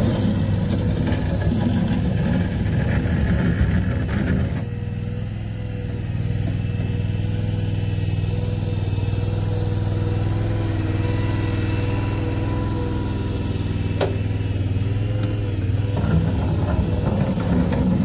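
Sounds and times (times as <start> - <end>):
mini skid steer engine running: 0.0 - 18.0.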